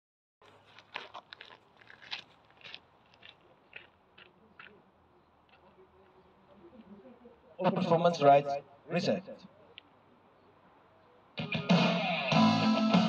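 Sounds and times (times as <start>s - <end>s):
footsteps on gravel: 0.4s - 6.2s.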